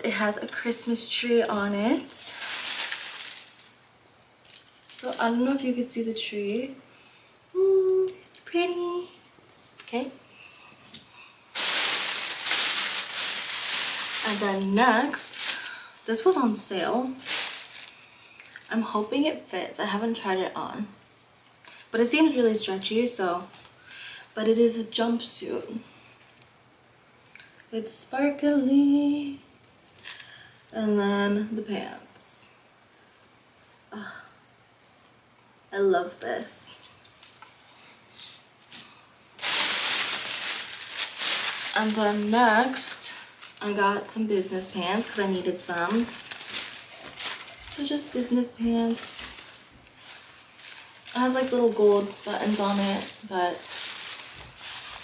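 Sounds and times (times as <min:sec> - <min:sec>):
shopping bag rustling: 0:00.3 - 0:03.8, 0:11.5 - 0:19.0, 0:39.4 - 0:55.0
faint handling of sequined fabric: 0:11.5 - 0:19.2, 0:38.6 - 0:55.0.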